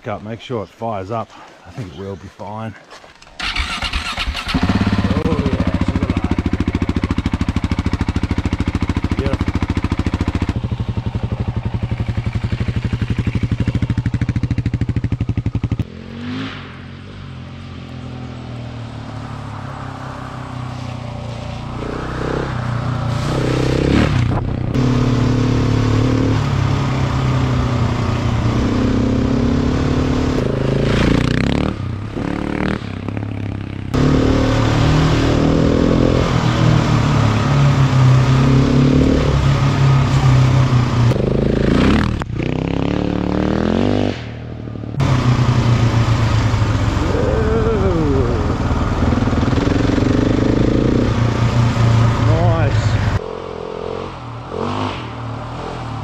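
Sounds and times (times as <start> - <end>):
motorcycle engine revving: 3.4 - 56.0.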